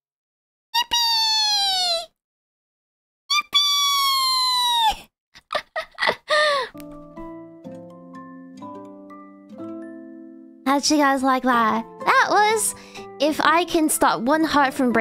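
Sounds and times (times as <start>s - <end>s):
high-pitched vocal squeals: 0.8s - 2.2s, 3.3s - 5.1s
soft piano-like background music: 6.8s - 15.0s.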